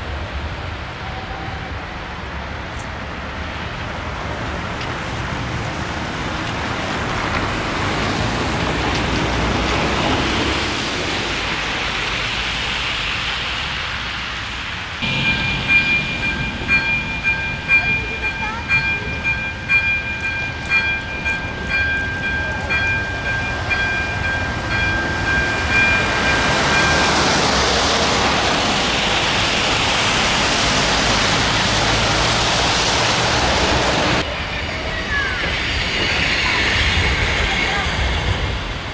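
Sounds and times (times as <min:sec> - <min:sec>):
diesel railcar passing: 0:00.0 - 0:38.9
street traffic rush: 0:00.0 - 0:38.9
level crossing warning bell: 0:15.0 - 0:28.0.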